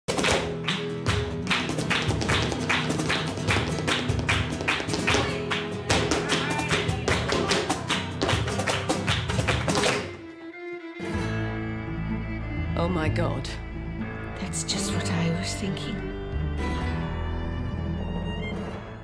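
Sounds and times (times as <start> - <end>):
shoes stamping on floor: 0.1 - 10.2
flamenco guitar: 0.1 - 10.4.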